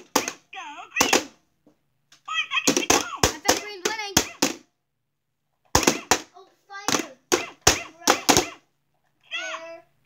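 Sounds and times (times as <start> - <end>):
plastic mallets hitting toy: 0.0 - 0.4, 1.0 - 1.4, 2.6 - 4.7, 5.7 - 8.6.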